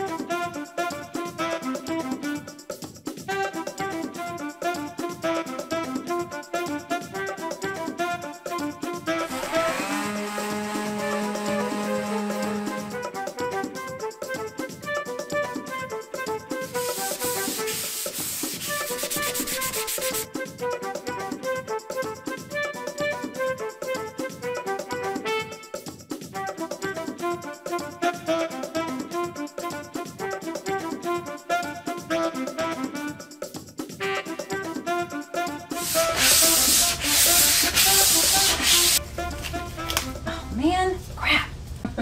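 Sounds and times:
background music: 0.0 - 41.0
sandpaper rubbing on wood: 9.3 - 13.0, 16.7 - 20.3, 35.8 - 39.0.

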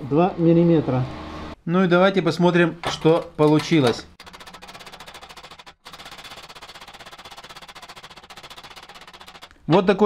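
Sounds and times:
rattle of metallic taps: 2.8 - 4.1.

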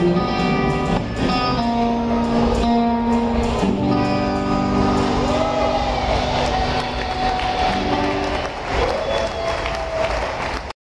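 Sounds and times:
electric guitar and synth chord: 0.0 - 8.7.

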